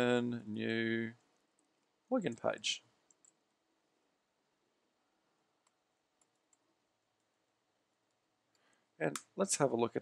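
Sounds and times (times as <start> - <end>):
faint computer clicks: 1.4 - 3.4.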